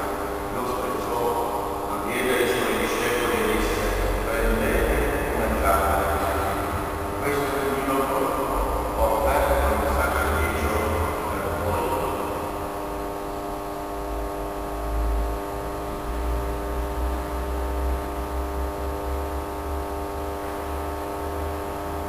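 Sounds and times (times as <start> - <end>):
low uneven rumble: 0.0 - 16.9
electrical mains hum: 0.0 - 22.0.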